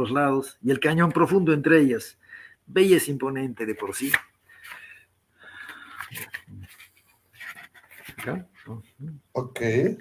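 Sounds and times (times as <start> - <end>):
book pages rustling: 5.6 - 8.7.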